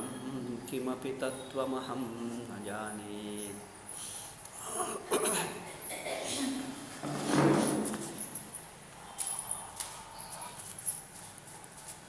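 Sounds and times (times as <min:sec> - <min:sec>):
man clearing throat: 0:04.6 - 0:06.7.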